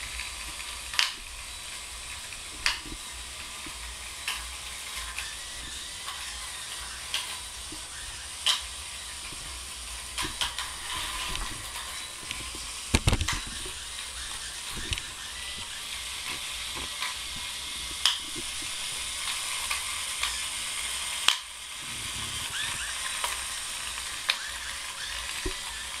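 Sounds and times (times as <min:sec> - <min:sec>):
robot gearmotors whirring: 0:00.0 - 0:26.0.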